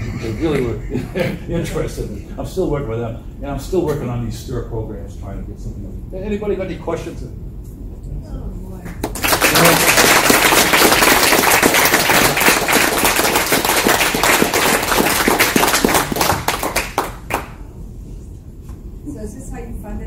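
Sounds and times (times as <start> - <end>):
audience applauding: 9.0 - 17.6.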